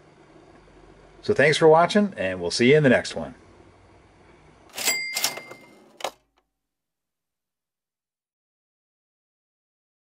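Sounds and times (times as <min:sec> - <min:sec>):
short metallic ring: 0:04.7 - 0:05.9.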